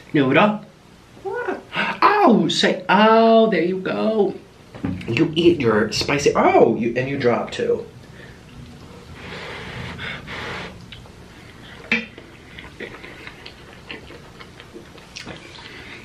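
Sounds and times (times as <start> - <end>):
man chewing noodles: 8.5 - 16.0
man blowing out breaths: 9.2 - 10.8.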